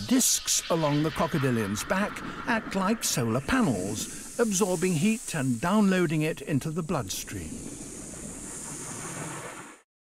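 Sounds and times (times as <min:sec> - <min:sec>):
rushing ambient noise: 0:00.0 - 0:09.8.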